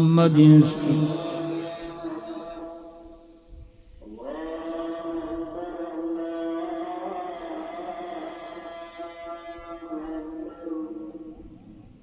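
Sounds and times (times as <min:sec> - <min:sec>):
person chanting long sung note: 0:00.0 - 0:03.1, 0:04.0 - 0:11.5.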